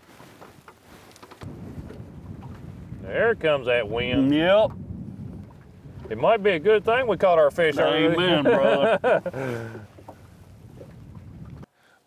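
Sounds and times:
wind gusting across microphone: 1.2s - 11.7s.

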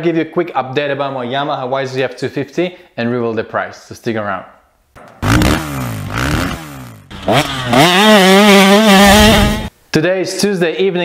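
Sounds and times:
dirt bike engine revving: 5.2s - 9.7s.

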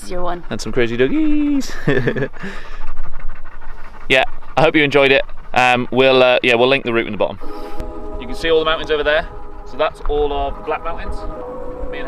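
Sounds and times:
dog panting: 0.0s - 12.0s.

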